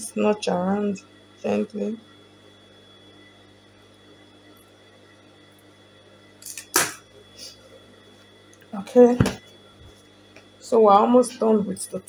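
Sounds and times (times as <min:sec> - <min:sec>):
faint room hum: 0:00.0 - 0:12.0.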